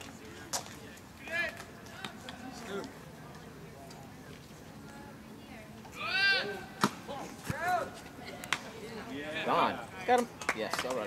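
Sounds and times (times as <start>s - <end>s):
people shouting: 6.0s - 7.9s.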